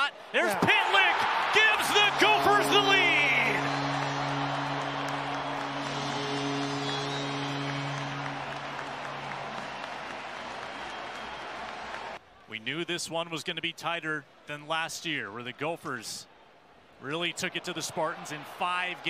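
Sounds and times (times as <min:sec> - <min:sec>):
crowd cheering: 0:00.0 - 0:12.5, 0:17.1 - 0:19.0
low goal horn: 0:01.3 - 0:12.2
higher horn tone: 0:01.4 - 0:12.2.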